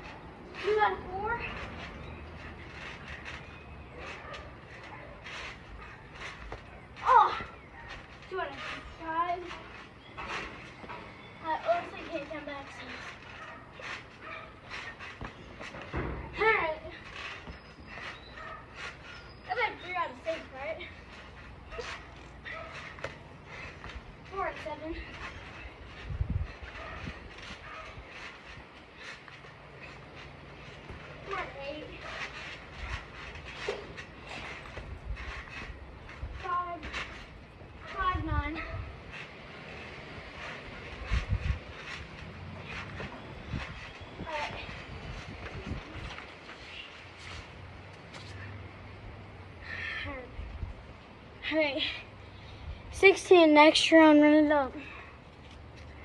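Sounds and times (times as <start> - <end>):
trampoline bouncing thumps: 0.0 - 49.3.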